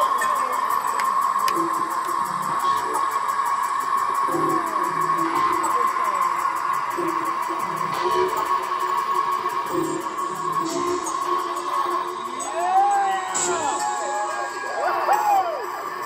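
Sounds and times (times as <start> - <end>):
loud electronic dance music: 0.0 - 16.0.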